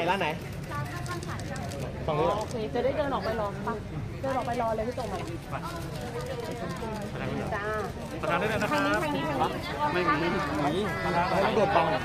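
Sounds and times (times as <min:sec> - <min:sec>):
people talking in a crowd: 0:00.0 - 0:12.0.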